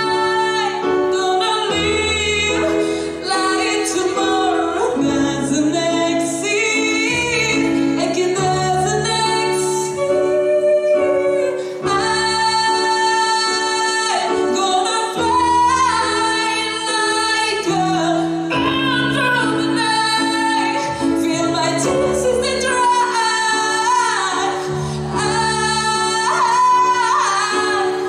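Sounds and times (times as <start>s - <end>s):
woman singing into microphone: 0.0s - 28.0s.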